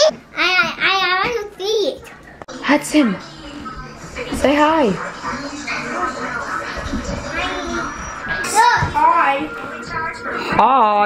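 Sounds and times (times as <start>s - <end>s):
background music: 2.5s - 11.0s
children talking and exclaiming: 3.3s - 10.6s.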